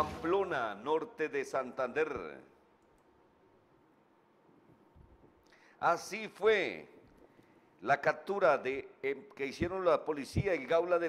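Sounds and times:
man speaking: 0:00.0 - 0:02.5, 0:05.8 - 0:07.0, 0:07.8 - 0:11.0.

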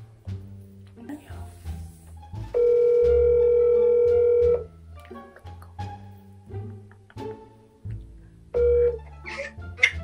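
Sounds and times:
background music with bass: 0:00.0 - 0:10.0
phone ringback tone: 0:02.5 - 0:04.6, 0:08.6 - 0:09.1.

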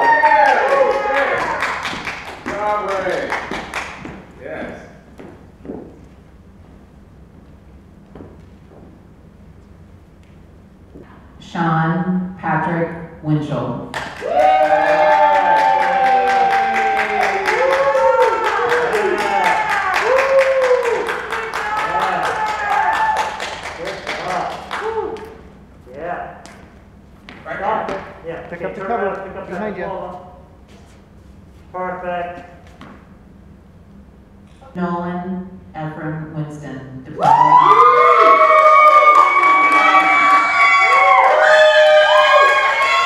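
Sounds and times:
voices cheering in whoops: 0:00.0 - 0:01.8, 0:14.2 - 0:23.4, 0:24.7 - 0:25.4, 0:37.2 - 0:43.0
rapid even clapping: 0:00.4 - 0:04.3, 0:13.9 - 0:25.4.

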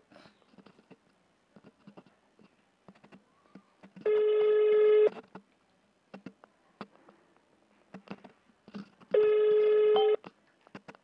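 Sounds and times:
phone call tone: 0:04.1 - 0:05.1, 0:09.1 - 0:10.2.

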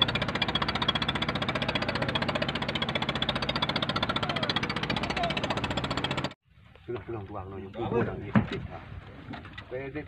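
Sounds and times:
men talking indistinctly: 0:06.8 - 0:09.0.

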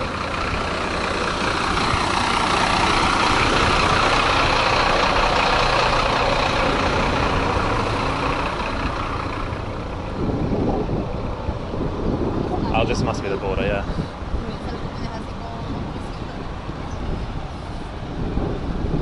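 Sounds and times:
heavy vehicle engine: 0:00.0 - 0:19.0
road traffic: 0:00.0 - 0:19.0.

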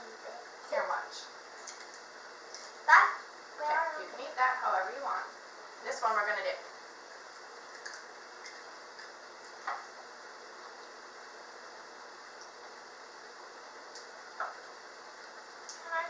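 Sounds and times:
room hiss: 0:00.0 - 0:16.0.

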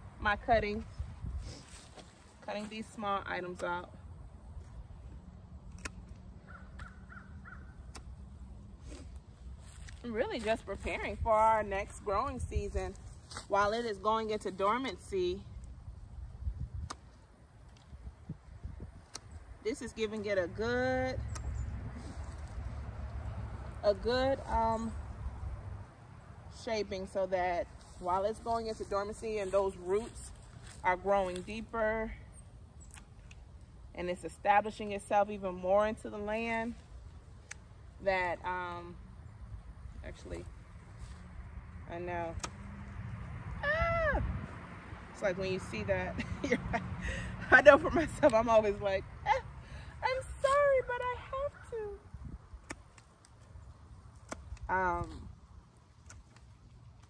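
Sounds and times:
outdoor background noise: 0:00.0 - 0:57.0
pruners snipping clicks: 0:05.6 - 0:07.0, 0:07.8 - 0:08.2, 0:16.8 - 0:17.9, 0:19.0 - 0:19.4, 0:21.1 - 0:21.6, 0:32.8 - 0:33.4, 0:42.2 - 0:42.8, 0:52.5 - 0:53.4, 0:54.2 - 0:54.7, 0:56.0 - 0:57.0
distant bird calling: 0:06.4 - 0:07.9.

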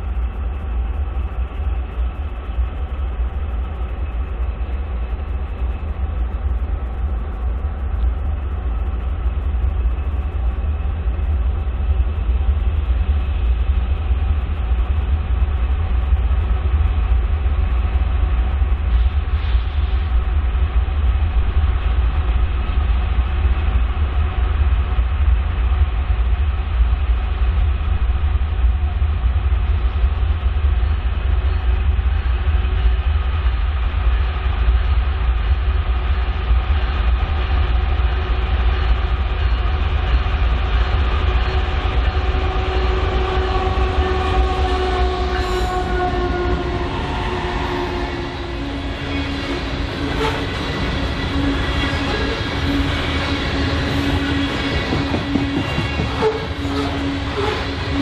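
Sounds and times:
diesel locomotive rumble: 0:00.0 - 0:58.0
rail cars rolling past: 0:00.0 - 0:58.0.

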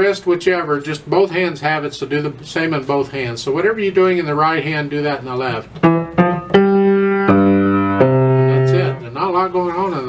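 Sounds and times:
low piano notes: 0:05.6 - 0:09.2.

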